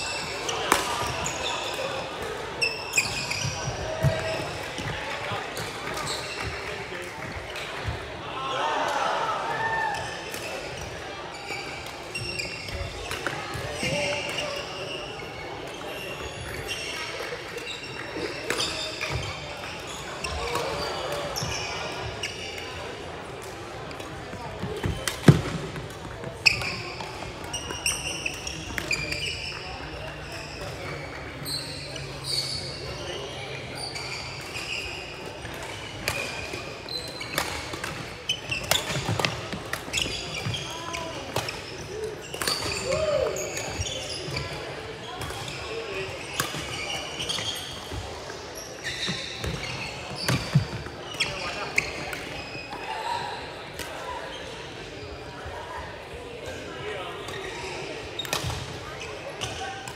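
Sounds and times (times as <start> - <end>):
shoes squeaking on floor: 0.0 - 7.4, 10.0 - 22.7, 24.2 - 53.3.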